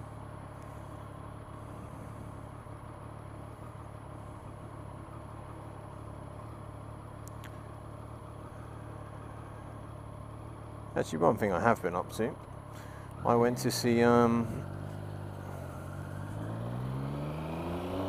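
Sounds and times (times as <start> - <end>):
motorcycle engine running: 0.0 - 18.0.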